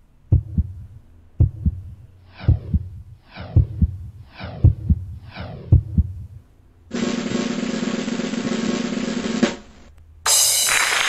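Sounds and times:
heartbeat double low thump: 0:00.3 - 0:06.5.

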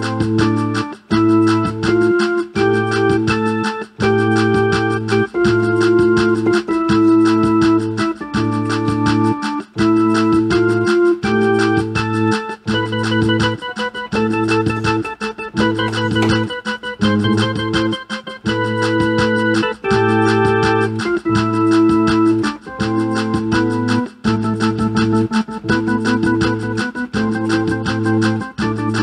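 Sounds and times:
fast ticking beat: 0:00.0 - 0:29.0
organ-like chords: 0:00.0 - 0:29.0.

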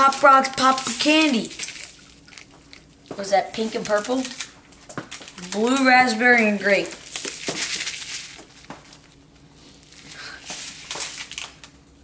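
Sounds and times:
candy packets crinkling: 0:00.0 - 0:12.0.

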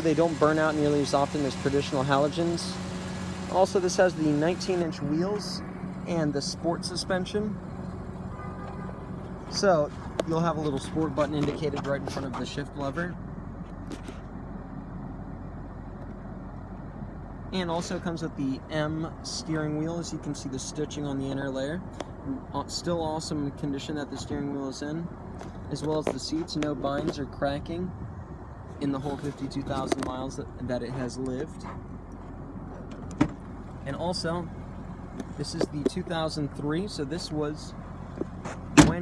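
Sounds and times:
car cabin hum and rumble: 0:00.0 - 0:39.0.

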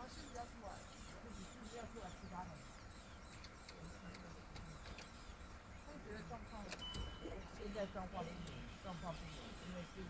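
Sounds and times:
people talking quietly: 0:00.0 - 0:10.0.

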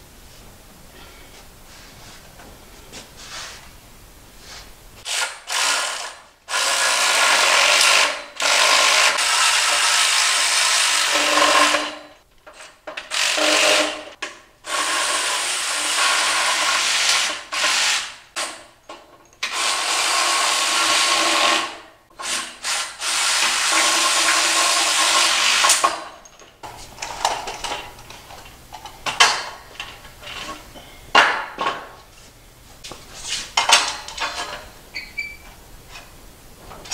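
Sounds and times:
cordless drill driving bolts: 0:05.1 - 0:12.0, 0:13.0 - 0:14.1.

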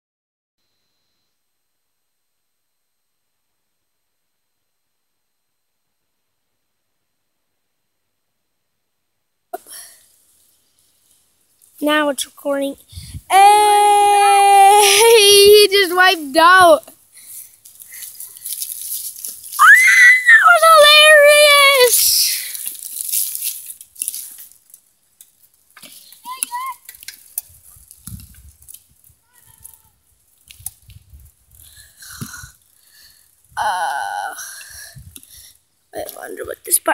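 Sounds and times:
faint hiss: 0:00.6 - 0:36.9
child speaking: 0:11.8 - 0:16.9, 0:20.3 - 0:22.5, 0:26.3 - 0:26.8, 0:36.0 - 0:36.9
wind rumble on microphone: 0:12.9 - 0:13.3, 0:27.5 - 0:32.6, 0:34.8 - 0:35.2.

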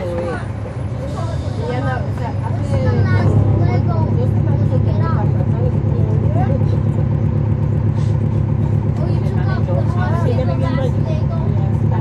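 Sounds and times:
people talking: 0:00.0 - 0:07.2, 0:08.6 - 0:12.0
bus diesel engine droning: 0:00.0 - 0:12.0.

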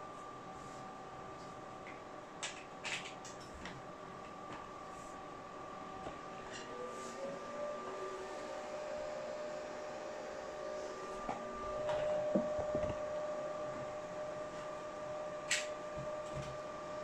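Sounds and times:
cooling fans whirring: 0:00.0 - 0:17.0.

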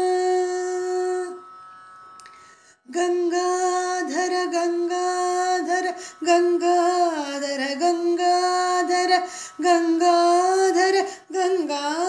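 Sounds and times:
woman singing long note: 0:00.0 - 0:01.5, 0:02.9 - 0:12.0.

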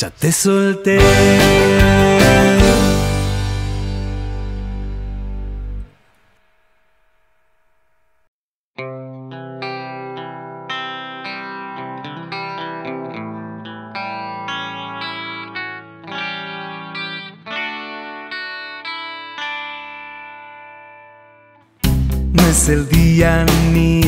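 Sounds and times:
plucked notes with chorus effect: 0:01.0 - 0:05.9, 0:08.8 - 0:24.0
held low notes: 0:01.0 - 0:06.0.

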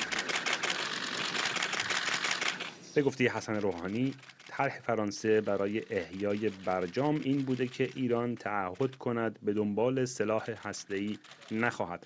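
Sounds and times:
camera shutters clicking: 0:00.0 - 0:02.8, 0:03.5 - 0:04.7, 0:05.4 - 0:08.1, 0:11.0 - 0:11.7.

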